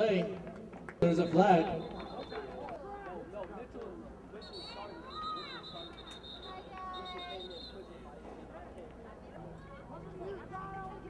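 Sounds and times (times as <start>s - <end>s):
voices calling and shouting: 1.0s - 11.0s.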